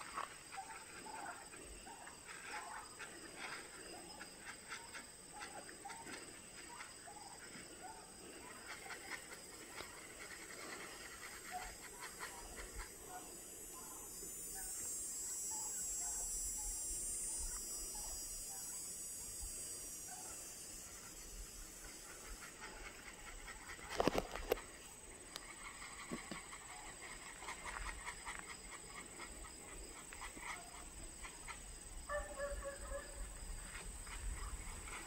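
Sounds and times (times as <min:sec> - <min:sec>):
hiss: 0:00.0 - 0:32.0.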